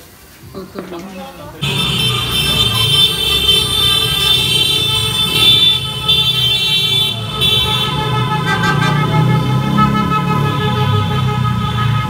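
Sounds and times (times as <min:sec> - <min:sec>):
horns blowing: 0:01.6 - 0:12.0.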